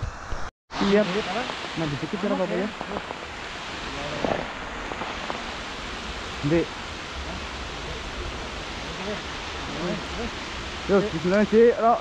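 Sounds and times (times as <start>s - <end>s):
outdoor rushing hiss: 0.0s - 12.0s.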